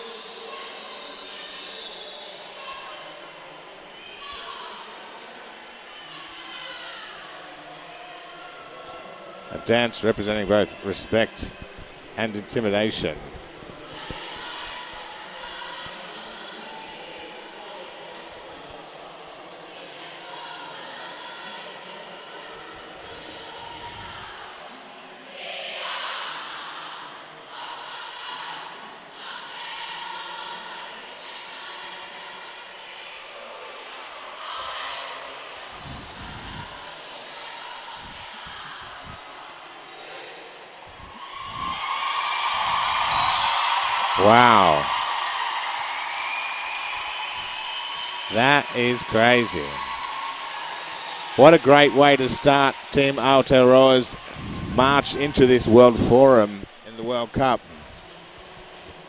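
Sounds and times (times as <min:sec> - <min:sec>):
women chanting in unison: 0:13.8 - 0:41.8
crowd cheering and applause: 0:41.0 - 0:59.0.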